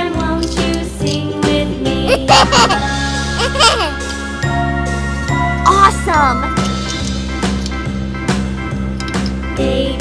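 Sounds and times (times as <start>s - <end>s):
jingly children's music: 0.0s - 10.0s.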